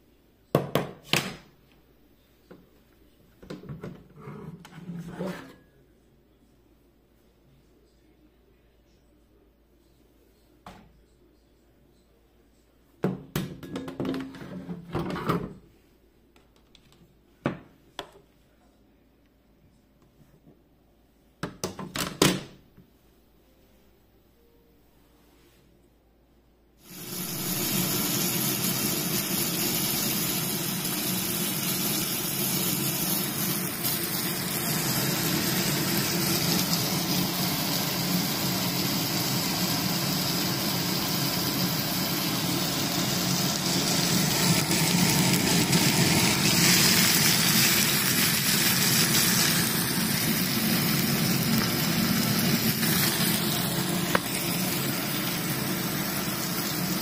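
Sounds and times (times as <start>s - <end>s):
food frying in a pan: 26.8s - 57.0s
extractor fan running: 26.9s - 57.0s.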